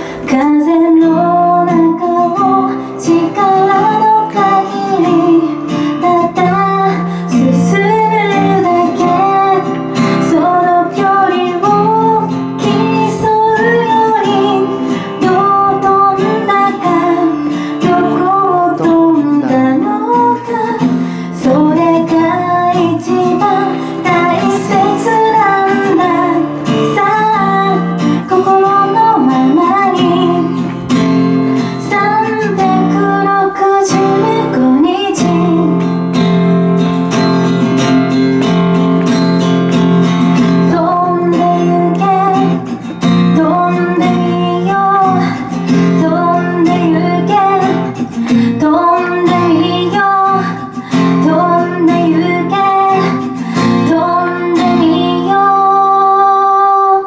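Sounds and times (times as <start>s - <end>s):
acoustic guitar strumming: 0.0s - 57.0s
woman singing: 0.0s - 57.0s.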